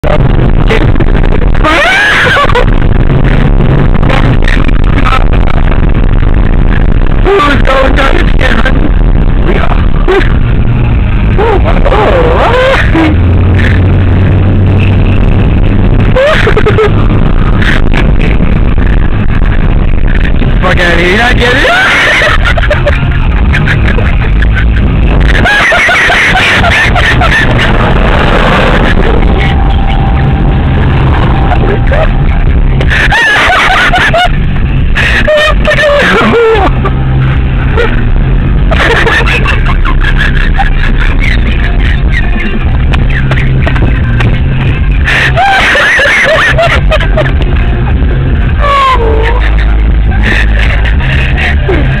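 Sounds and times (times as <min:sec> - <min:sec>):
car engine and road rumble: 0:00.0 - 0:52.0.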